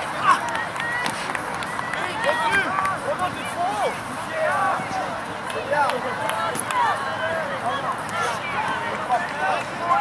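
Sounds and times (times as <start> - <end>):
people shouting and calling: 0.0 - 10.0.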